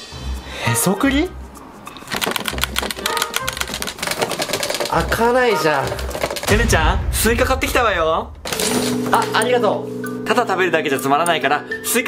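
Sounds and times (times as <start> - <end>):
metal case latches rattling: 2.0 - 6.5.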